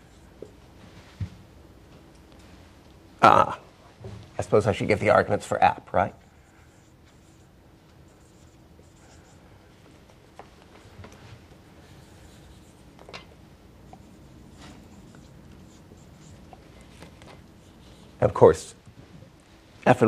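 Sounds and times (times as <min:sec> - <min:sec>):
marker pen writing on whiteboard: 0:06.2 - 0:18.2.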